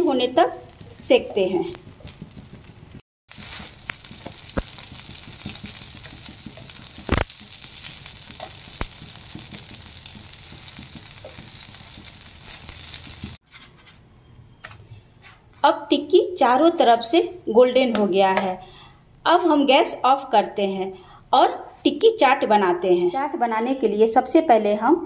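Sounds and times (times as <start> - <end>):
food sizzling in a pan: 0.0 - 13.4.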